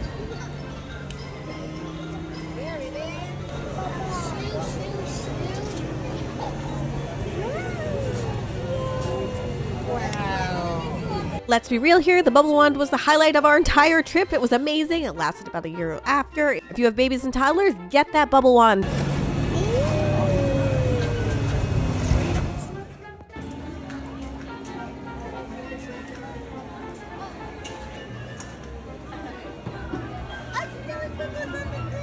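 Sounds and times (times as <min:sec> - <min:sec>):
background crowd hum: 0:00.0 - 0:15.4, 0:18.8 - 0:32.0
steady background noise: 0:00.0 - 0:16.1, 0:18.8 - 0:32.0.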